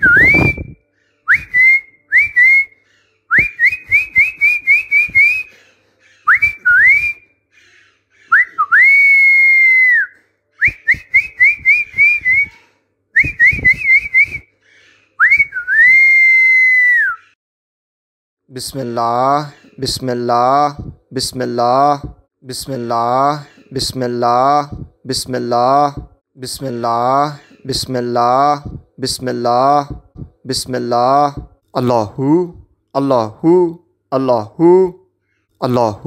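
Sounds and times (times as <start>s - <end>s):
person whistling: 0.0s - 5.6s, 6.3s - 7.2s, 8.3s - 12.6s, 13.2s - 14.5s, 15.2s - 17.4s.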